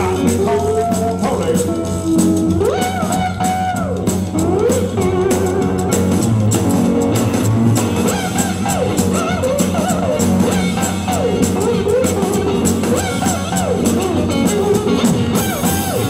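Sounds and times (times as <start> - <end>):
cigar-box guitar bending notes: 0.0 - 16.0
percussion beat: 0.0 - 16.0.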